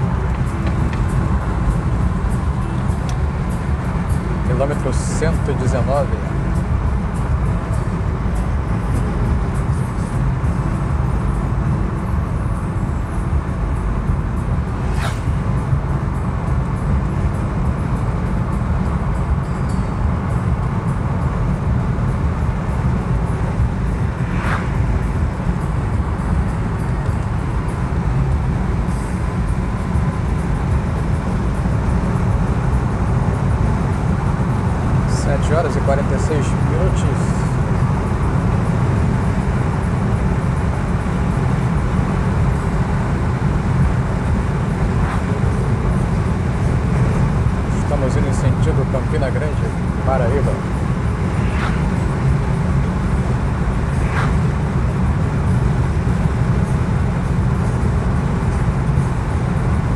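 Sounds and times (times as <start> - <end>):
car cabin road noise: 0.0 - 59.9.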